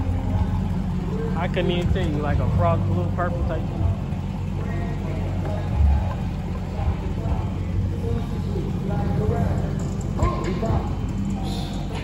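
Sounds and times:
car engine idling rumble: 0:00.0 - 0:12.0
faint music: 0:00.0 - 0:12.0
voices: 0:00.0 - 0:12.0.

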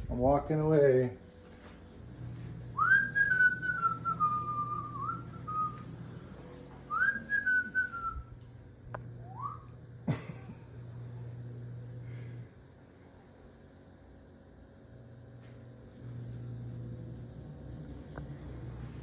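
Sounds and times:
person whistling: 0:02.8 - 0:05.8, 0:06.9 - 0:08.3, 0:09.2 - 0:09.7.

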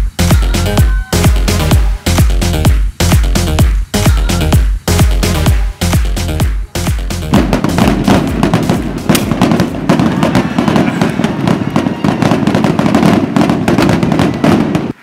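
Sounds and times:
music: 0:00.0 - 0:10.3
crowd clapping and cheering: 0:00.0 - 0:15.0.

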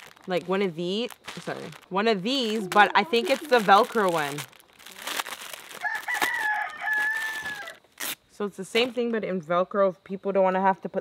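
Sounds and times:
plastic packet crinkling: 0:00.0 - 0:08.2
rooster crowing: 0:05.7 - 0:07.9.

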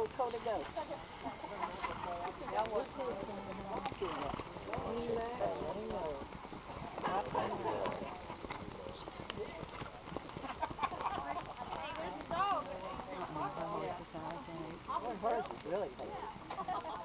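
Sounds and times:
horse hoofbeats on dirt: 0:00.0 - 0:17.0
spectators chattering: 0:00.0 - 0:17.0.

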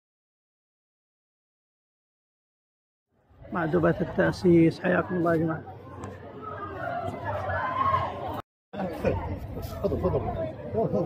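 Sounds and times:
men's voices chattering: 0:03.4 - 0:11.0.

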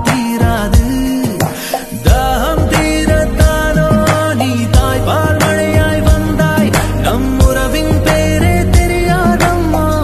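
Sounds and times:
film song with singing: 0:00.0 - 0:10.0.

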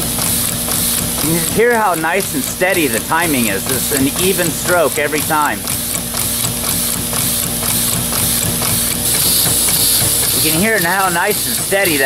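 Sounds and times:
air engine valve knocks: 0:04.1 - 0:12.0.

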